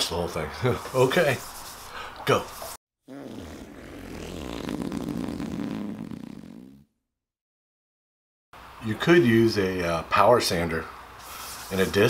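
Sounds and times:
fart sound effect: 3.1s - 6.9s.

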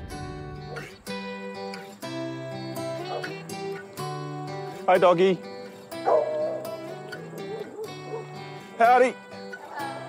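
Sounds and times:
background music: 0.0s - 10.0s
dog barking: 0.7s - 0.9s, 3.0s - 3.4s, 6.0s - 8.4s.

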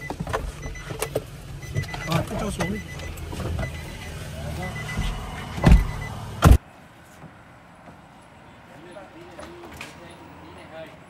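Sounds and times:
low rumble inside car: 0.0s - 6.6s
loud thumps: 4.9s - 6.6s.

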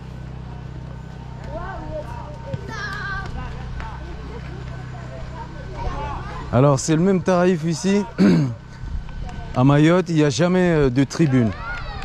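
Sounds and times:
steady low hum: 0.0s - 12.0s
voices calling and talking: 0.0s - 12.0s.

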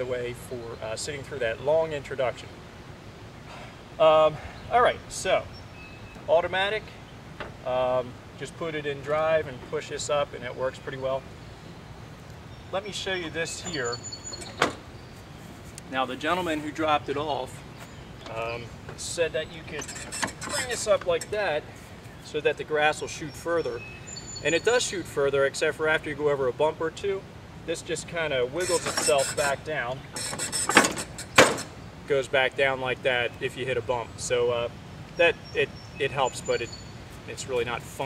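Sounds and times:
plastic chute rustle: 18.3s - 21.4s, 28.6s - 31.8s
chute knocking against deck: 30.2s - 31.8s.

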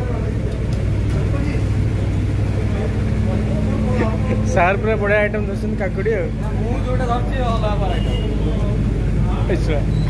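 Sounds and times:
faint background voices: 0.0s - 4.9s
low machine hum: 0.0s - 10.0s.

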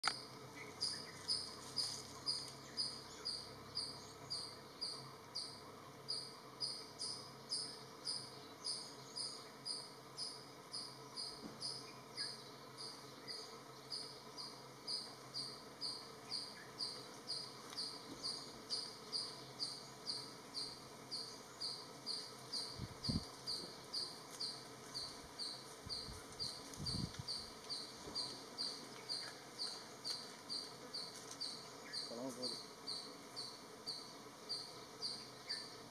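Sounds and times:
insect chirping: 0.0s - 35.9s.

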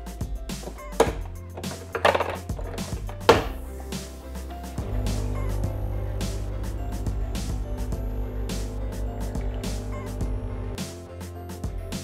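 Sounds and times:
rustling and knocks: 0.6s - 3.6s
espresso machine pump buzzing: 4.7s - 10.8s.

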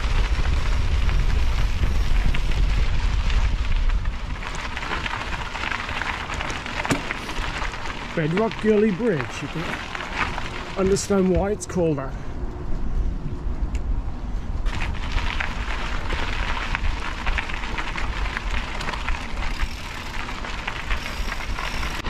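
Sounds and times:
bike tyres crunching over gravel: 0.0s - 13.6s, 14.2s - 22.0s
wind rumbling on microphone: 0.0s - 22.0s.

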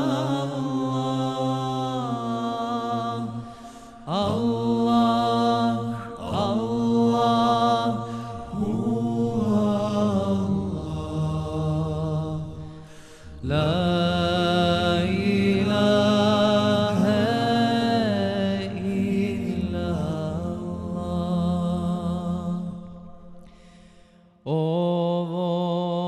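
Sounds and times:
low vocal drone: 0.0s - 23.8s.

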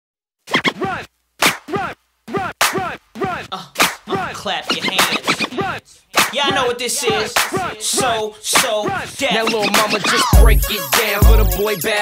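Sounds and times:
turntable scratching: 0.4s - 12.0s.

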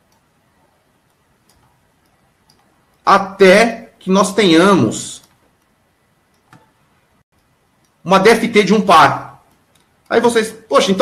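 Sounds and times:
person speaking: 3.0s - 5.4s, 7.9s - 11.0s.

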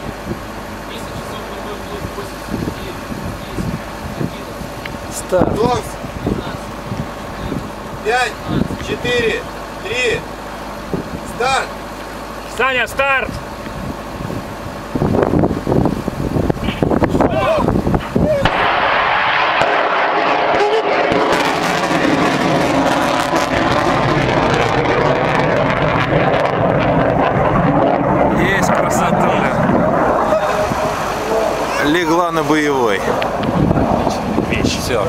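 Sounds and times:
rocket roar: 13.2s - 35.0s
missile launch blast: 17.9s - 31.8s.

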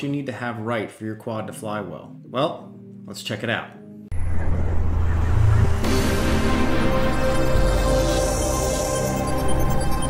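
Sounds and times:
intro music: 3.8s - 10.0s
loud low rumbling: 4.1s - 8.7s.

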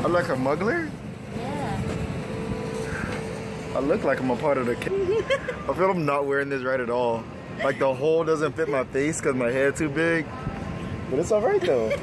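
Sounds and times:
go-kart engine running: 0.0s - 9.3s.

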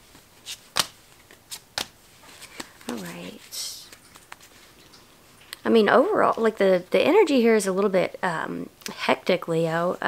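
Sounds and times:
cards snapping: 0.4s - 4.5s.

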